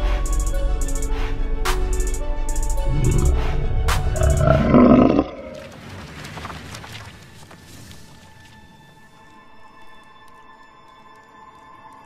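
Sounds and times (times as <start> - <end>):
trailer music: 0.0 - 5.7
loud roar: 2.8 - 5.6.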